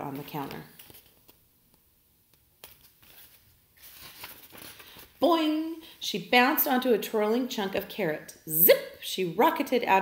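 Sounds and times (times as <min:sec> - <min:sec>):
soft paper rustle: 0:00.0 - 0:05.5.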